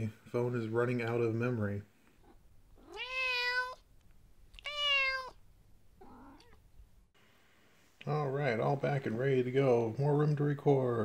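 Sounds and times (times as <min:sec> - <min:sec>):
cat meow: 0:02.8 - 0:03.8, 0:04.5 - 0:05.4, 0:06.0 - 0:06.6.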